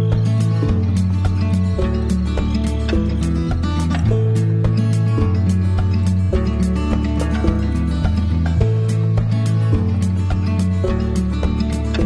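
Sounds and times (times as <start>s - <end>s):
intro music with held notes: 0.0s - 12.0s
steady clicking beat: 0.0s - 12.0s.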